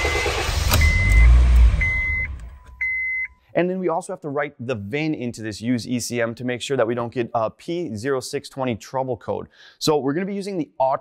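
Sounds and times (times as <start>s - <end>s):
car engine starting and stalling: 0.0s - 2.8s
short high beep: 0.0s - 3.5s.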